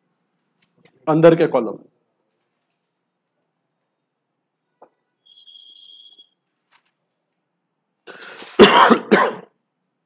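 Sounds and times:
man coughing: 8.4s - 9.6s.

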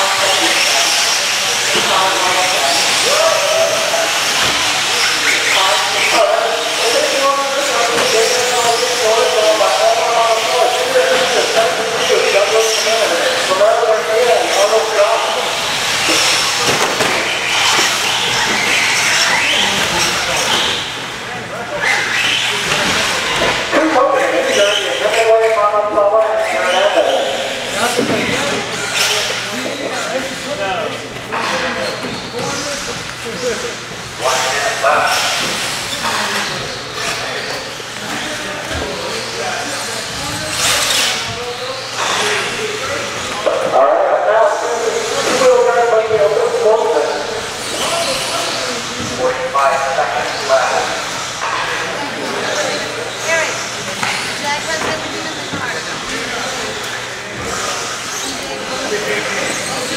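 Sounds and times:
indistinct voices in a hall: 0.0s - 59.9s.

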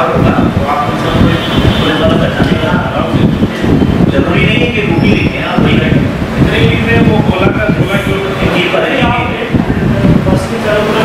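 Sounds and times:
heavy low rumble: 0.0s - 11.0s.

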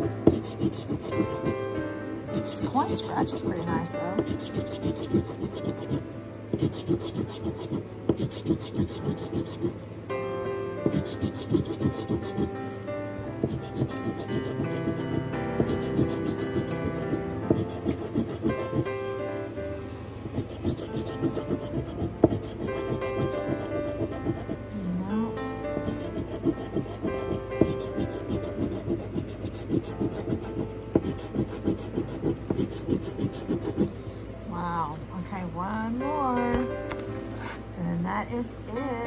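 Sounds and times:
coin scratching lottery ticket: 0.0s - 1.7s, 2.3s - 9.7s, 10.8s - 12.5s, 13.4s - 18.9s, 20.3s - 24.6s, 25.8s - 33.9s
background music: 0.0s - 39.0s.

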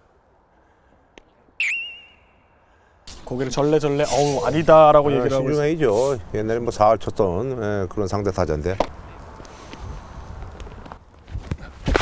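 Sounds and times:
comic whistle sound effect: 1.6s - 2.5s.

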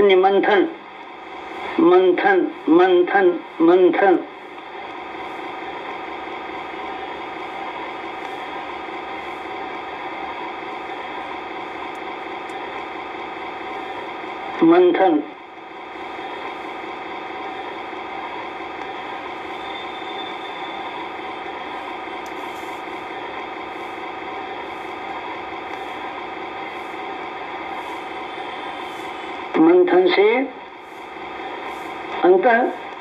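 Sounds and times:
person speaking: 1.6s - 4.5s, 14.5s - 15.4s, 28.9s - 31.0s
drone of held tones: 18.8s - 22.8s.

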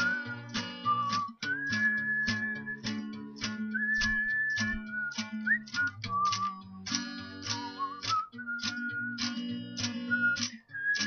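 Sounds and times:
person whistling a melody: 0.0s - 6.8s, 7.4s - 11.0s
strummed acoustic guitar: 0.0s - 11.0s.

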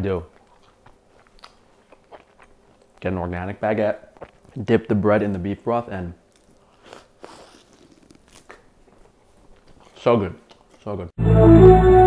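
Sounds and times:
biting and chewing bread: 0.3s - 3.1s, 4.0s - 4.6s, 6.2s - 10.9s
soft crunches of bread crust: 6.3s - 11.0s.

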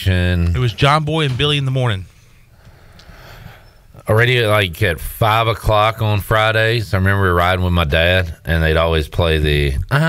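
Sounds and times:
soft breath: 2.1s - 4.0s.

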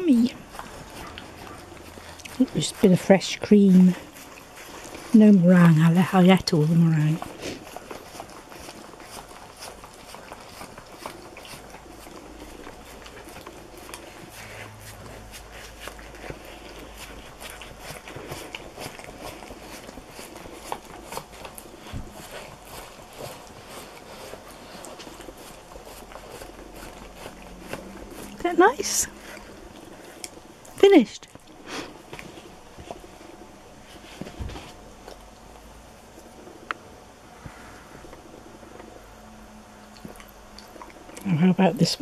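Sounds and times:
dog licking cardboard: 0.0s - 36.4s.

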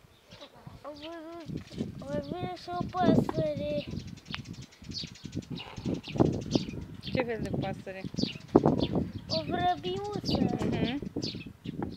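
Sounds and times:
songbirds chirping: 0.0s - 11.9s.

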